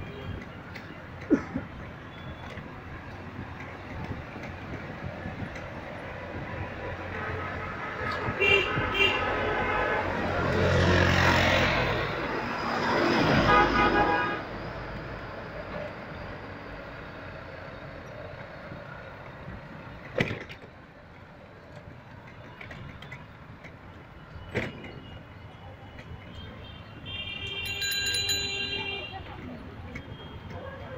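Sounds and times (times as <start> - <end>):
rush of passing traffic: 0.0 - 30.9
car horn: 7.2 - 10.2, 13.3 - 14.5, 26.3 - 29.3.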